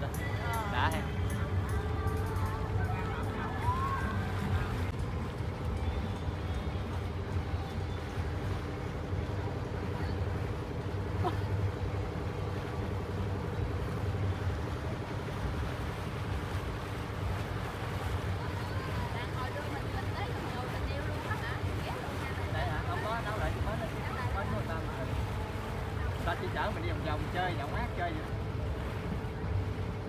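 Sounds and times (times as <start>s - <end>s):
boat engine drone: 0.0s - 30.0s
steady hum: 0.0s - 30.0s.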